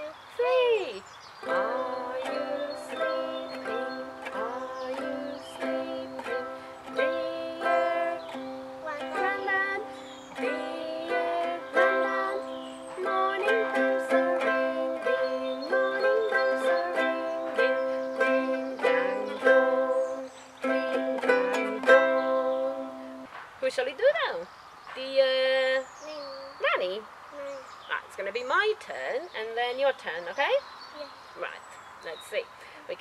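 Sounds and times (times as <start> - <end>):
ukuleles strumming chords: 1.4 - 23.3.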